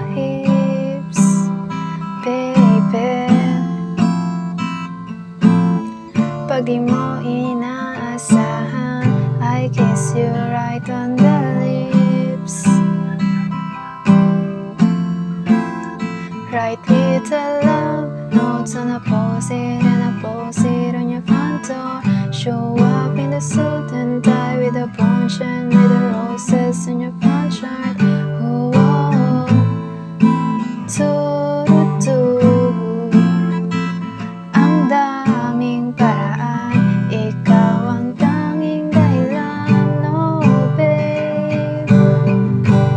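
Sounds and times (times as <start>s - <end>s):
person singing softly: 0.0s - 4.3s, 5.7s - 13.0s, 15.8s - 42.9s
acoustic guitar strumming: 0.0s - 42.9s.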